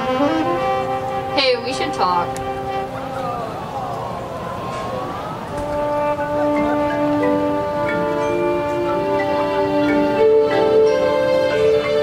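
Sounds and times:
brass band sustained chord: 0.0s - 3.2s, 5.5s - 12.0s.

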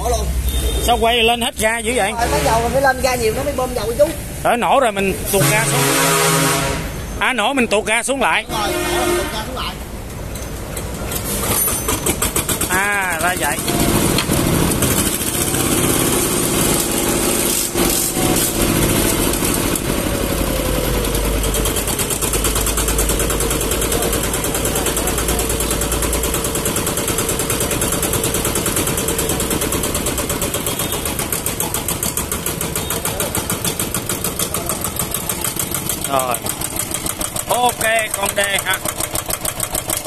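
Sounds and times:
diesel engine idling: 0.0s - 10.1s, 10.9s - 40.0s.

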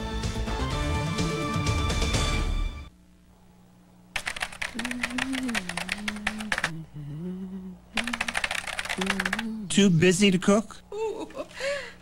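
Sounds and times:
rapid keyboard typing: 4.2s - 6.8s, 8.0s - 9.6s
low hummed tune: 4.6s - 10.0s.

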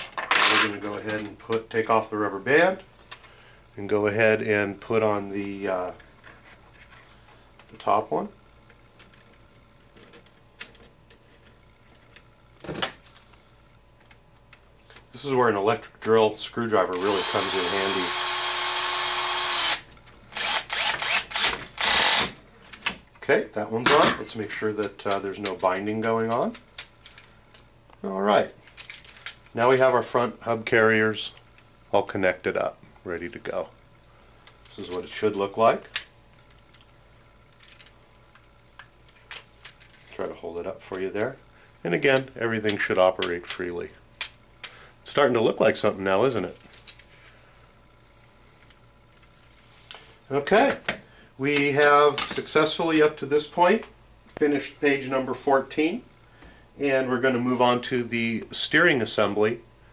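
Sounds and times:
low steady hum: 0.0s - 59.9s
hands handling small parts: 28.6s - 29.5s, 37.5s - 40.2s
plastic parts clicking and rattling: 28.7s - 29.4s, 37.5s - 37.9s.

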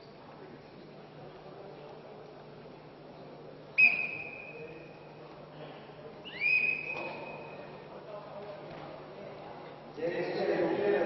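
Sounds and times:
referee's whistle blast: 3.8s - 5.0s, 6.3s - 7.7s.

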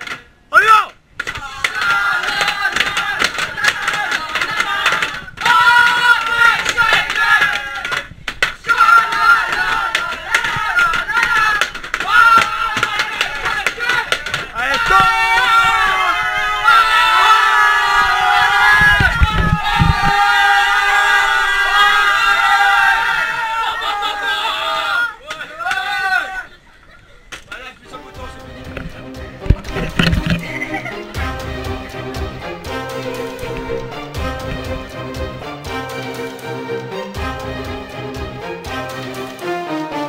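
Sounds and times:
boys chanting and yelling: 0.5s - 28.4s.

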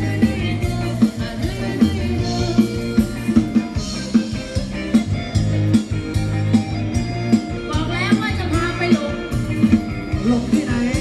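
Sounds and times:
live band dance music: 0.0s - 11.0s.

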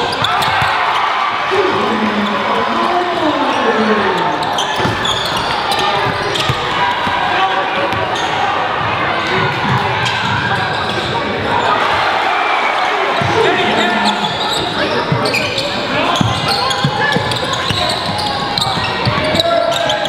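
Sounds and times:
indistinct crowd and player voices: 0.0s - 20.0s.

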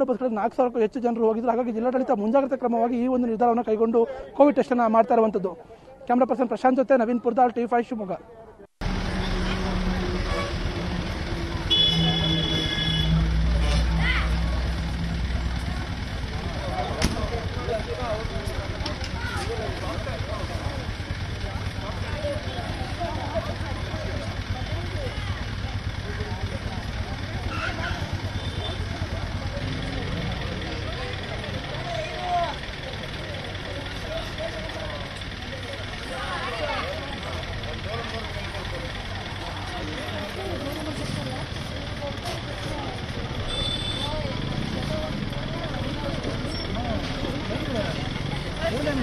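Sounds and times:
bus engine idling: 8.8s - 49.0s
people talking: 9.2s - 49.0s.

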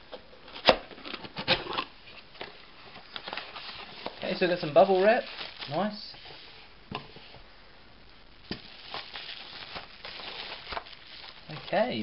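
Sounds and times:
bubble wrap crinkling: 0.4s - 6.7s, 8.3s - 12.0s.

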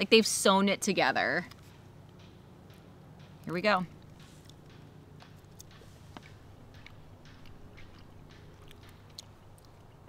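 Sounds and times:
chewing soft food: 5.4s - 10.0s.

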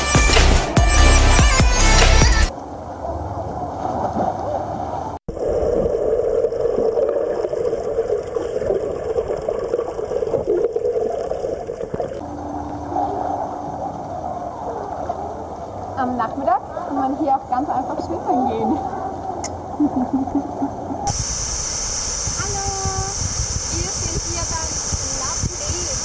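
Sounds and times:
muffled underwater water noise: 2.5s - 26.0s
low underwater bubbling: 5.3s - 16.0s.

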